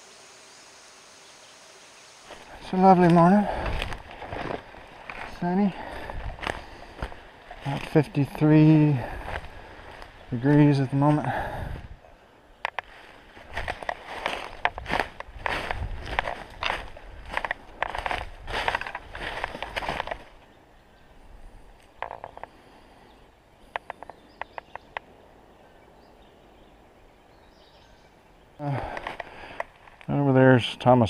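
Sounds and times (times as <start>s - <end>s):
light crackles of leaves and twigs: 2.1s - 11.8s, 12.5s - 20.6s, 23.6s - 25.2s, 28.6s - 30.4s
footsteps crunching through dry leaves: 2.1s - 11.9s, 12.8s - 20.4s.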